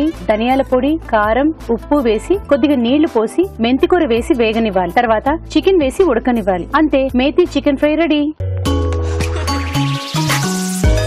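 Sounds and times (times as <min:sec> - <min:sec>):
woman talking: 0:00.0 - 0:08.4.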